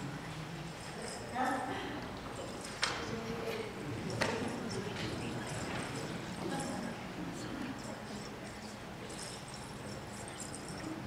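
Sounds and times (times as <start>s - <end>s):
faint voices murmuring: 0.0s - 11.0s.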